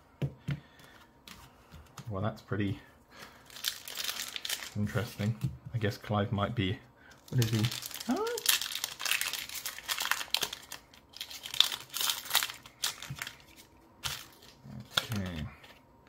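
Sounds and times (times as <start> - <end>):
foil wrapper crinkling and tearing: 3.4 - 5.4, 7.2 - 15.8
person murmuring: 8.0 - 8.5.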